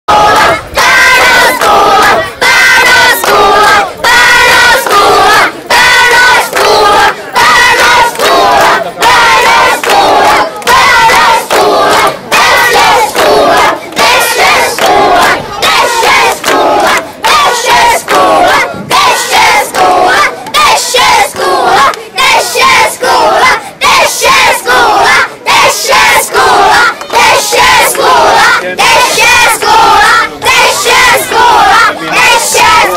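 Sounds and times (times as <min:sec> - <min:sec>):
children chanting slogan: 0:00.1 - 0:32.9.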